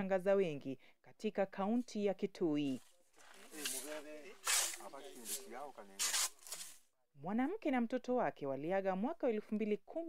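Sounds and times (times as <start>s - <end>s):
people talking: 0.0s - 6.2s, 7.2s - 10.0s
short hissing sounds: 4.4s - 6.8s.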